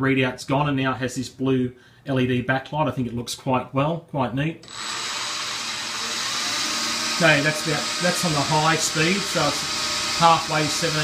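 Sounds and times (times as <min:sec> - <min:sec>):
mill spindle whirring: 0:04.6 - 0:11.0.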